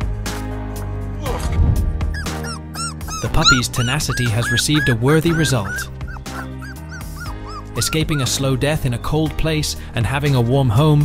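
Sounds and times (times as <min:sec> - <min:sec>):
background music: 0:00.0 - 0:11.0
puppy yipping: 0:02.1 - 0:08.6.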